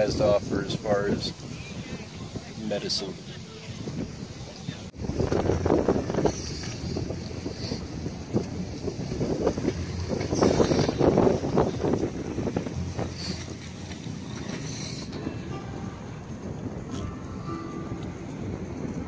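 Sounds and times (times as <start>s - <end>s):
wind buffeting the microphone: 0.0s - 19.0s.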